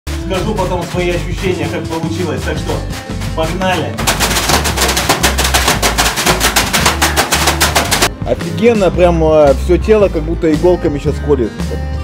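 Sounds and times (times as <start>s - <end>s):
background music with bass beat: 0.1s - 12.0s
bath brooms slapping on body: 0.6s - 8.1s.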